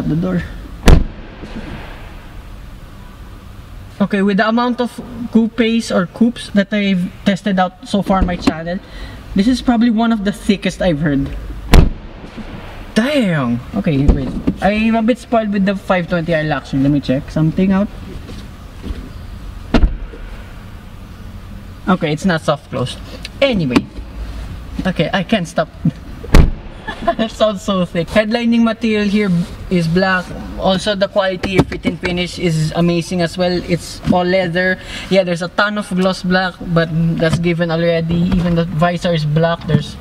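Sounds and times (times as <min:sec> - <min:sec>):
low hush of car interior: 0:00.0 - 0:40.0
heavy car door shutting: 0:00.8 - 0:02.6, 0:11.7 - 0:12.8, 0:19.7 - 0:20.6, 0:26.2 - 0:27.1.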